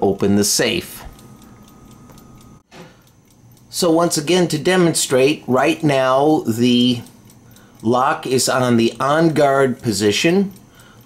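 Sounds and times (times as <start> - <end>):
clockwork ticking: 0.0 - 11.0.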